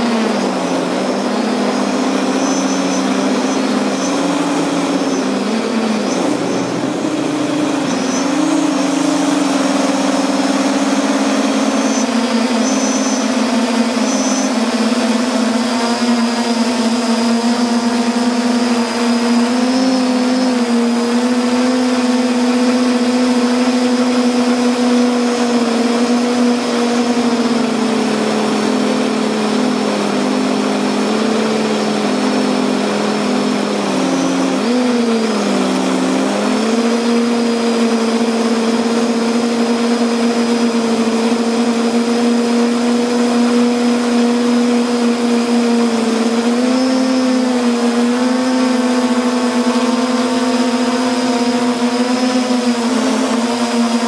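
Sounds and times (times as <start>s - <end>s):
drone propellers humming: 0.0s - 54.0s.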